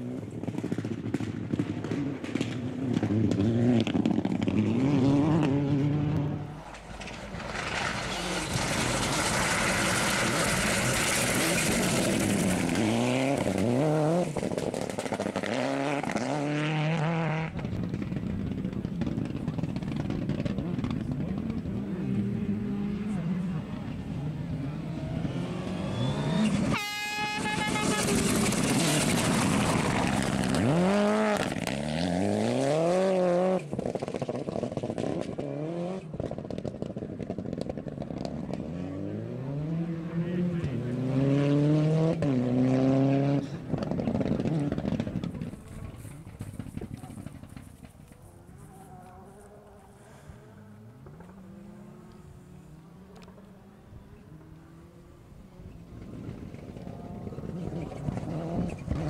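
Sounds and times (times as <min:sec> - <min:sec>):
rally car engines accelerating: 0:00.0 - 0:26.8, 0:27.4 - 0:59.0
tyres on gravel hiss: 0:07.3 - 0:12.9.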